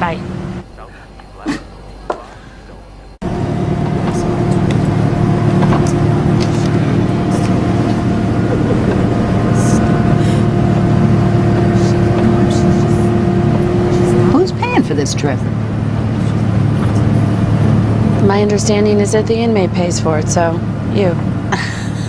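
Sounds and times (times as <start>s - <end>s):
road rumble: 0.0s - 0.9s, 3.2s - 22.0s
vehicle engine drone: 0.0s - 0.9s, 2.6s - 22.0s.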